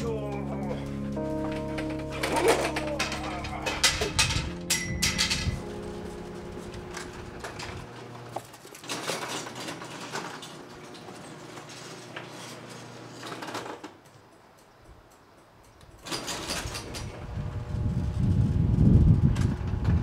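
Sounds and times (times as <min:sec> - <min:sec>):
garage door opener running: 0:01.4 - 0:14.0, 0:16.0 - 0:20.0
garage door rattling and knocking: 0:02.7 - 0:05.7.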